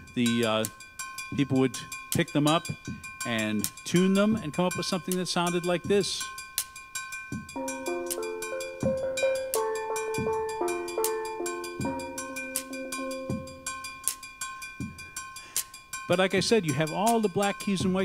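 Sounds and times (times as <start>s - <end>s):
steel pan melody: 0.2s - 17.8s.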